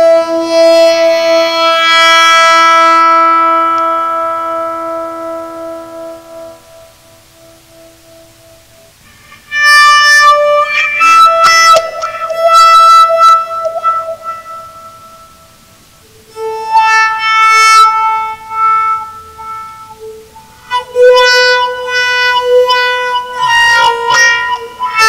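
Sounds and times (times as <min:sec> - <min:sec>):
bowed electric guitar notes: 0:00.0 - 0:25.0.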